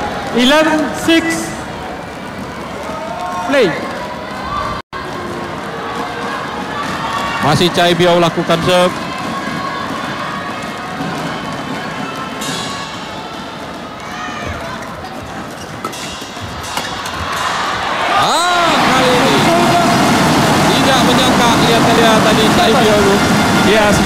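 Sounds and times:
crowd shouting and cheering: 0.0s - 24.0s
indoor crowd noise: 0.0s - 24.0s.

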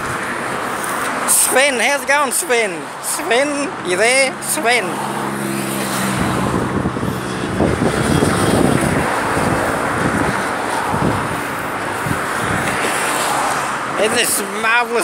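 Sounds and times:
road traffic passing: 0.0s - 15.0s.

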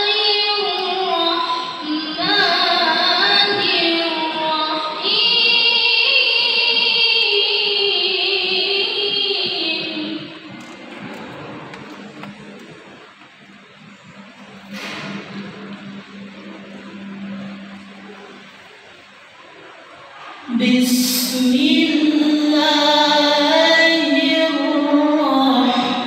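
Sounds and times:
woman singing over loudspeakers: 0.0s - 11.3s, 20.2s - 26.0s
low steady hum: 0.0s - 26.0s.

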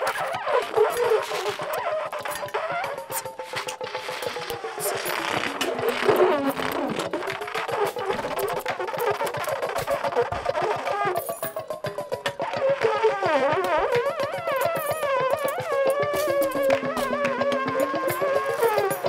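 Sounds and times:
laptop electronics: 0.0s - 10.3s
baritone saxophone squawking: 0.0s - 11.4s, 12.4s - 19.0s.

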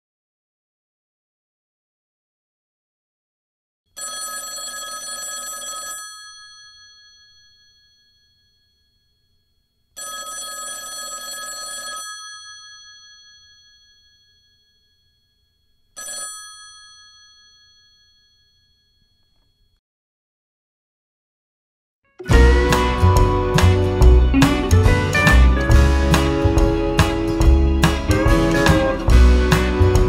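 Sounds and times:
telephone bell ringing: 3.9s - 19.8s.

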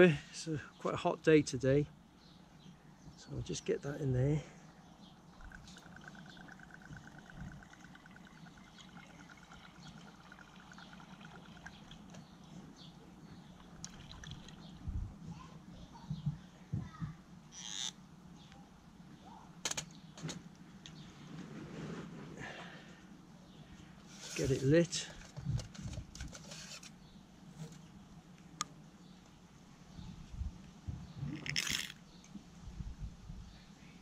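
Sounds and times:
liquid trickling: 5.3s - 12.3s, 13.4s - 14.8s.

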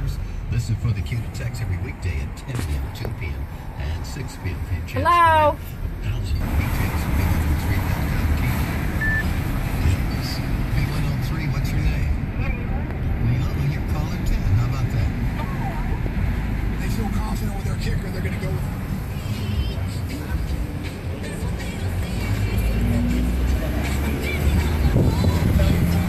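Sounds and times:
car engine and road rumble: 0.0s - 26.0s.

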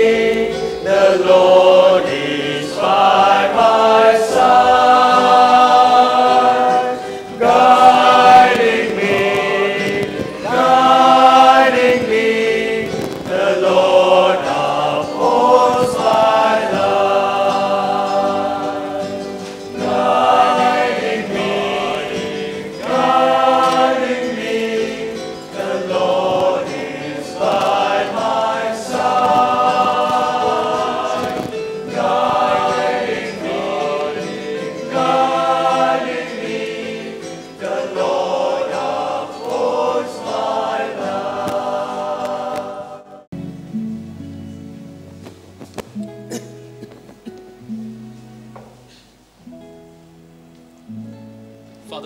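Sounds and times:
choir singing: 0.0s - 43.3s.

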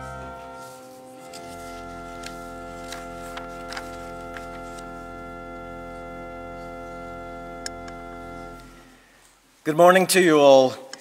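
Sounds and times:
church organ sustained chord: 0.0s - 9.4s.

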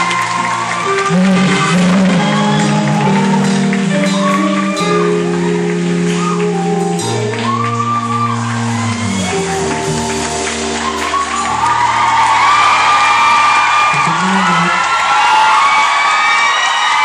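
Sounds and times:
live band sustained chords: 0.0s - 15.6s
crowd whooping and screaming: 0.0s - 17.0s.

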